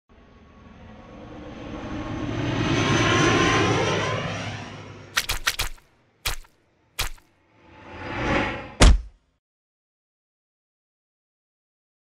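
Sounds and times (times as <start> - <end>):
airplane passing overhead: 0.1 - 8.8.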